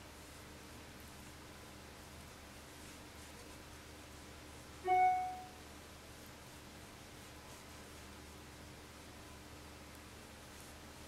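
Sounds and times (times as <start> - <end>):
bright bell-like chime: 4.9 - 5.5.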